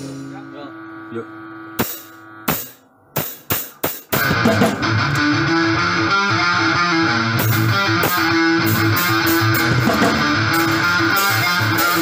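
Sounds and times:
amplifier electric hum: 0.0 - 3.2
band music: 4.1 - 12.0.

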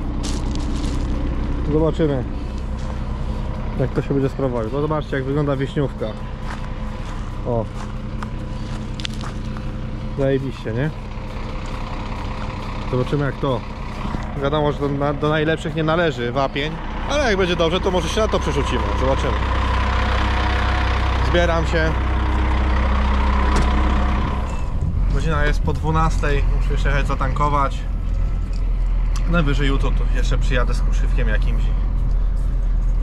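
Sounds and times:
footsteps on gravel: 0.0 - 4.8, 5.8 - 10.2, 11.2 - 12.6, 13.7 - 14.4
diesel engine idling: 0.0 - 33.0.

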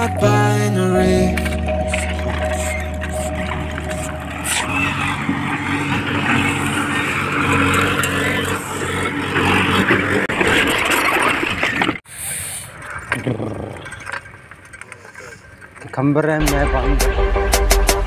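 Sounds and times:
engine running: 0.0 - 12.0
rough rumble: 1.2 - 12.0.

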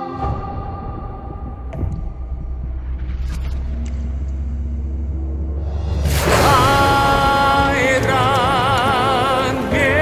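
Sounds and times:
deep steady rumble: 0.2 - 8.3.

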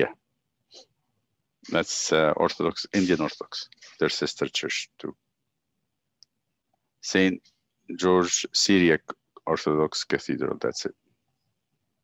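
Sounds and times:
spoken word: 1.7 - 5.1.

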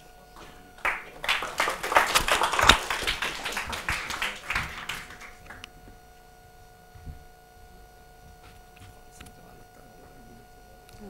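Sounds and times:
audience applauding: 0.0 - 5.7.

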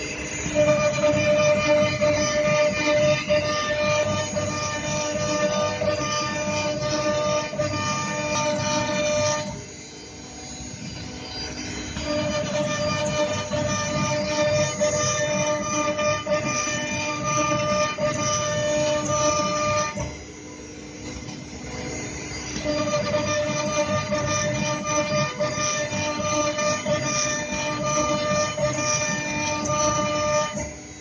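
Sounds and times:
cnc router motors whining: 0.0 - 31.0.

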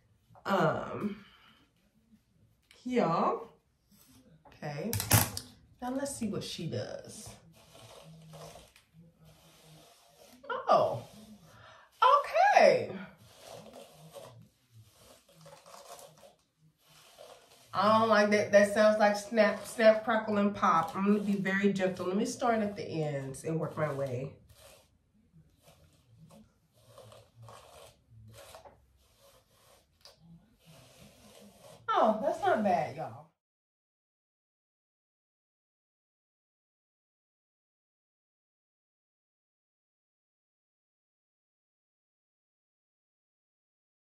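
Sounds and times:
comb rustling through hair: 3.8 - 33.2.

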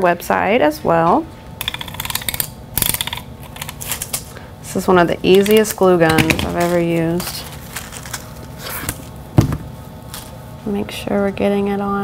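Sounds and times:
tape runner ratchet clicking: 1.6 - 4.2.

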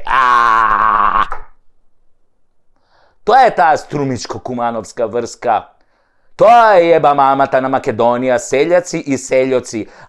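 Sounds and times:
man groaning: 0.0 - 1.4.

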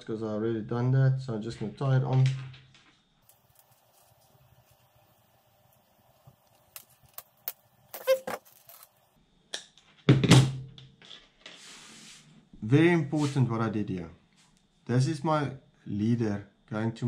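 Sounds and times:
fishing line rustling: 3.2 - 9.1
soft hiss: 3.2 - 9.2, 11.5 - 15.0.

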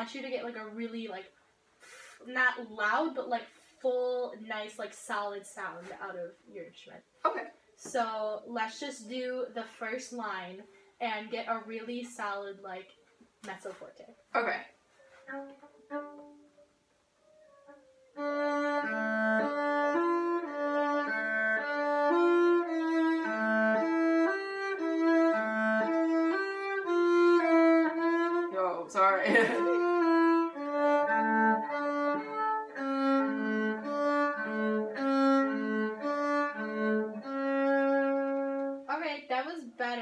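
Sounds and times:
bowed cello notes: 14.4 - 39.0.

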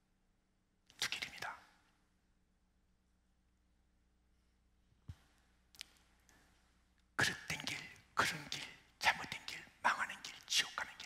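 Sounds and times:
man whispering: 0.9 - 2.0, 7.1 - 11.0.

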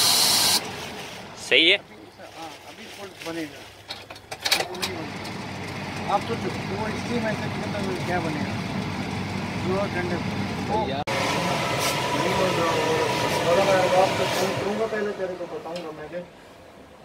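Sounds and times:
blower noise: 0.0 - 1.0, 5.1 - 16.0
voices: 1.3 - 3.7, 4.5 - 8.7, 9.6 - 16.3
machine hum: 5.0 - 16.0.

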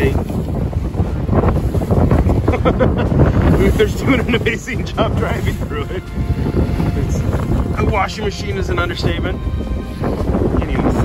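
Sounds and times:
waves slapping against hull: 0.0 - 11.0
wind noise on microphone: 0.0 - 11.0.

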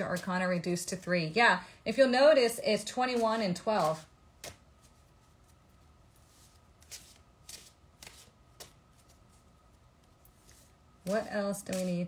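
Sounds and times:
cards being shuffled: 3.2 - 5.6, 6.2 - 12.0.

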